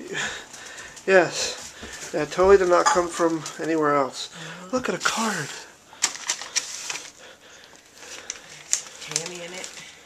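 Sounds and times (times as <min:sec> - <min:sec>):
paper rustling: 0:05.4 - 0:10.0
paper card crackling: 0:06.0 - 0:07.2, 0:07.8 - 0:10.0.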